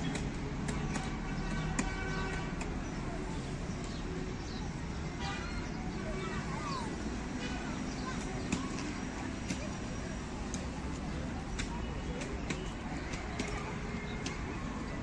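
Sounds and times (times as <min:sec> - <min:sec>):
traffic hum: 0:00.0 - 0:15.0
light sharp clicks: 0:10.4 - 0:14.5.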